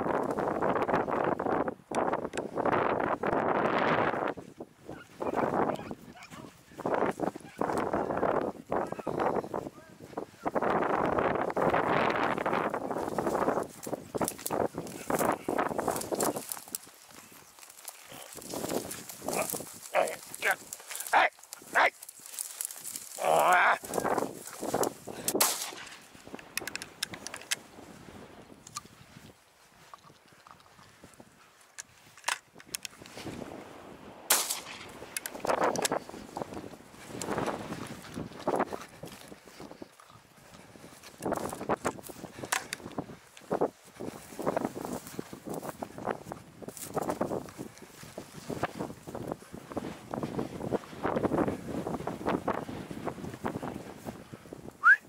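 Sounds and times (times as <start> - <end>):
brush crackling and rustling: 9.6 - 27.9, 28.7 - 54.1.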